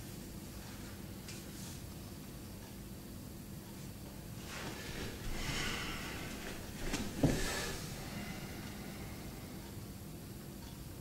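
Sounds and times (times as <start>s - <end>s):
person breathing hard through nose: 4.5s - 9.8s.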